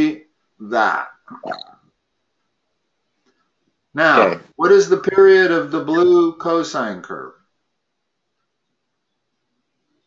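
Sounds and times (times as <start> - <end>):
person murmuring: 4.0 - 4.4.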